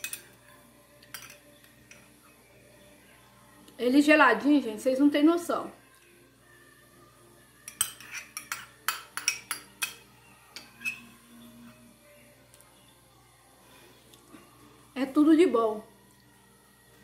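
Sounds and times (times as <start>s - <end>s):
metal spoon clinking on ceramic cup: 0.0s - 0.4s, 1.0s - 2.1s, 7.6s - 10.0s, 10.6s - 11.1s.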